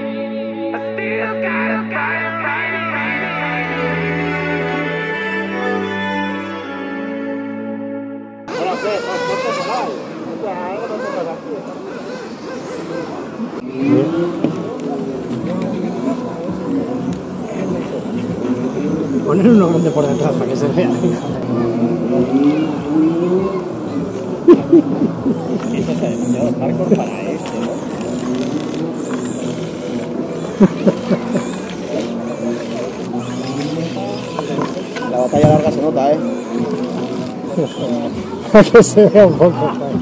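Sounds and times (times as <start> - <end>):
men talking: 8.5 - 40.0
toy car electric motor whining: 8.5 - 40.0.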